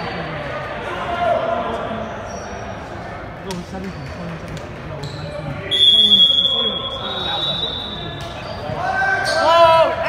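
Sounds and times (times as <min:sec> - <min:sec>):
voices calling out in gym: 0:00.0 - 0:10.0.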